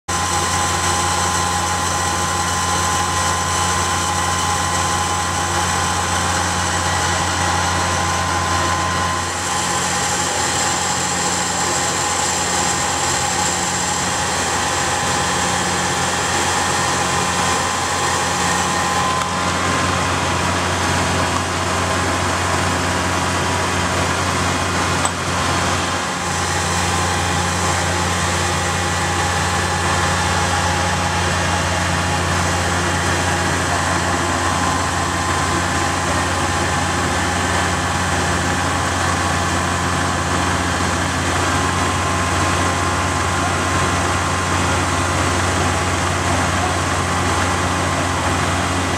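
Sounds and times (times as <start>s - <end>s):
engine idling drone: 0.1s - 48.9s.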